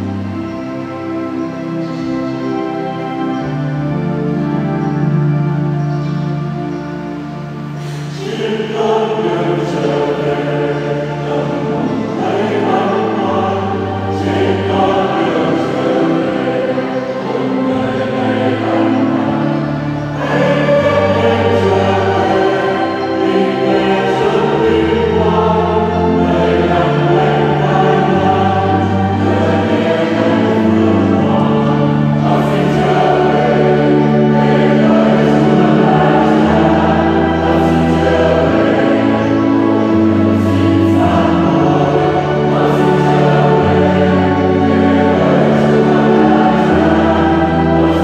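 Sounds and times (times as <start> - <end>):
church choir singing a hymn: 0.0 - 48.0.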